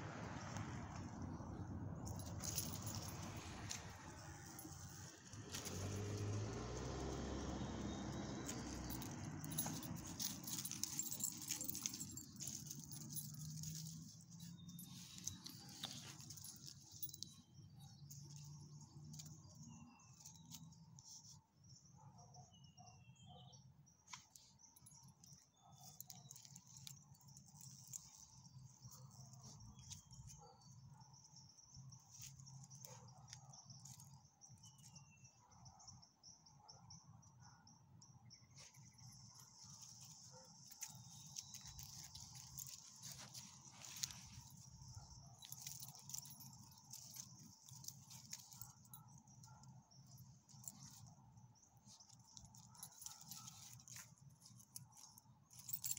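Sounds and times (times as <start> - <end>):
crickets chirring: 0.0 - 22.0, 23.0 - 55.9
dogs rustling dry leaves: 8.1 - 17.3, 39.6 - 48.7.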